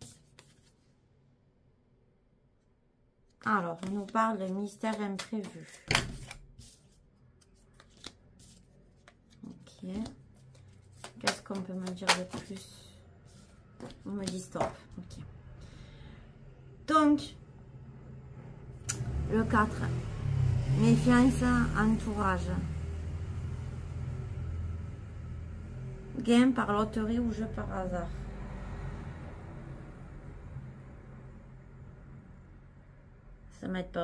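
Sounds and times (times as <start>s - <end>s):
cards sliding: 4.9s - 9.3s, 10.0s - 12.6s
cards tapping on tablecloth: 10.9s - 12.6s.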